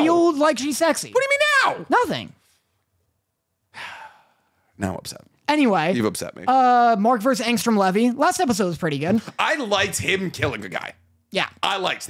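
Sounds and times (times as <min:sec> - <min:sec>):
man sighing: 0:03.7 - 0:04.5.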